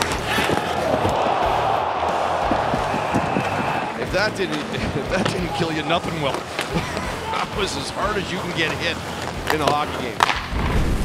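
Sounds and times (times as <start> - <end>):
arena crowd din: 0.0 - 10.4
music: 0.0 - 11.0.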